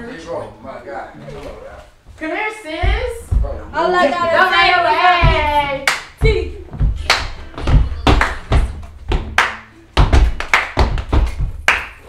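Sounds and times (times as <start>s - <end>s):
feet stomping on wooden floor: 2.1s - 12.0s
hand claps: 5.2s - 6.2s, 6.9s - 12.0s.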